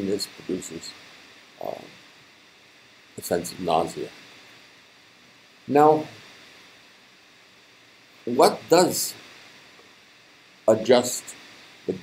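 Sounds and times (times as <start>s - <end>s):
faint room hiss: 0.0s - 12.0s
man saying um: 1.6s - 1.9s.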